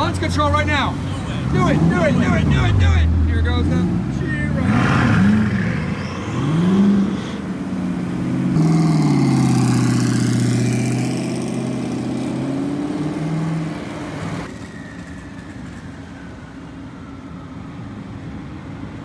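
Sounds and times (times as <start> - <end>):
car engines accelerating hard: 0.2 - 14.6
supercar engines revving: 0.3 - 14.6.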